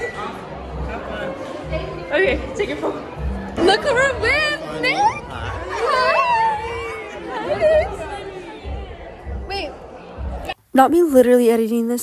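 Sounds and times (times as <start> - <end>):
young people chatting: 0.0 - 12.0.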